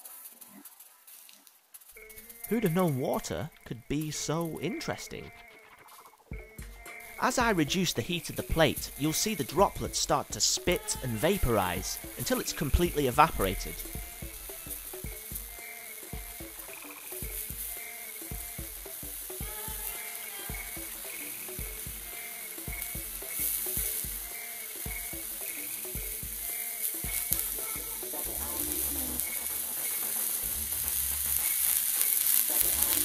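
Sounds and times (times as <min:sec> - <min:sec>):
water droplets sizzling on hot plate: 0:00.0 - 0:33.0.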